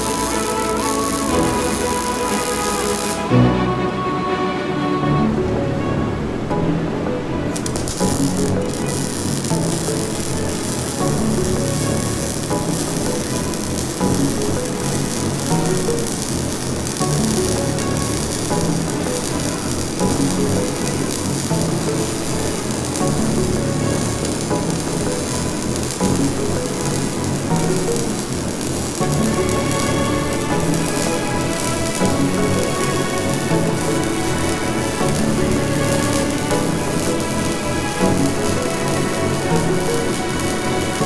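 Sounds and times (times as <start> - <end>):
welding arc crackling and sizzling: 0.0 - 3.3, 7.5 - 41.0
background music: 0.0 - 41.0.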